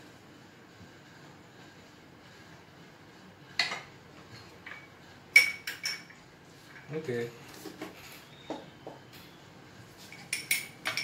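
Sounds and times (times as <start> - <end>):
cutlery clinking against dishes: 4.7 - 6.2, 10.1 - 11.0.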